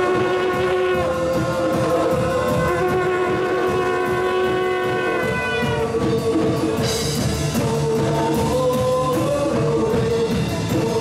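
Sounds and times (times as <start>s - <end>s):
drum beat: 0.0s - 11.0s.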